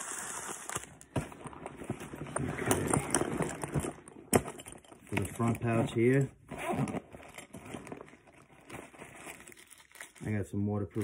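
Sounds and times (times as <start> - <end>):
backpack pouch rustling and unzipping: 0.1 - 4.1, 5.1 - 10.2.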